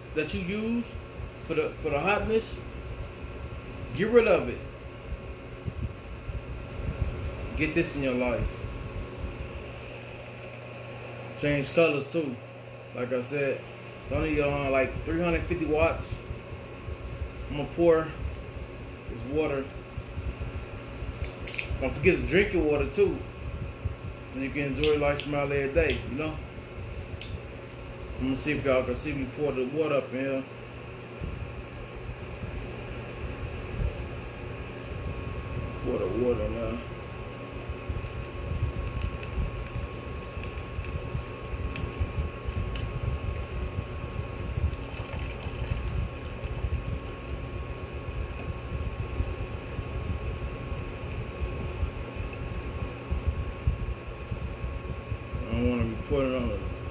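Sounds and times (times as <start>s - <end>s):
small fan running: 0.0s - 56.9s.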